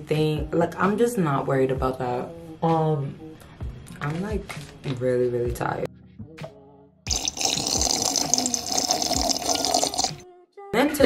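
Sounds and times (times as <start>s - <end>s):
person gulping: 7.1s - 10.2s.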